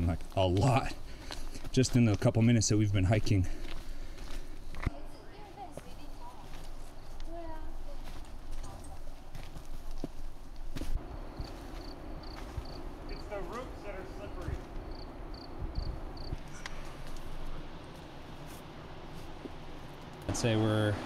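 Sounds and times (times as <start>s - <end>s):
footsteps on dirt trail: 0.0s - 20.2s.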